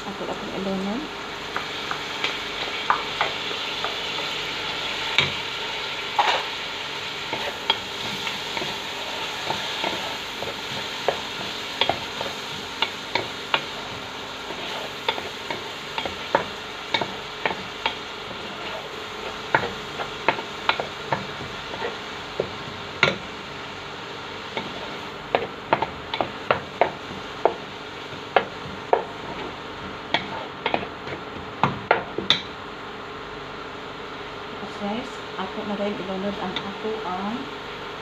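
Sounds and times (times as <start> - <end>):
onions sizzling in oil: 0.0 - 38.0
wooden spatula scraping pot: 7.3 - 22.8, 24.5 - 31.3.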